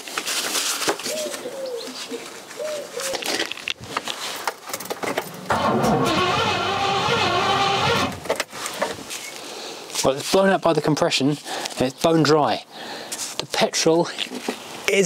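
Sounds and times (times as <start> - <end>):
pigeon cooing: 1.1 - 3.4
starter motor cranking engine: 5.3 - 8.4.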